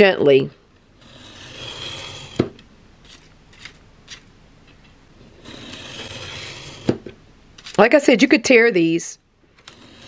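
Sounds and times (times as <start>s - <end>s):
utility knife cutting paper: 5.4s - 6.9s.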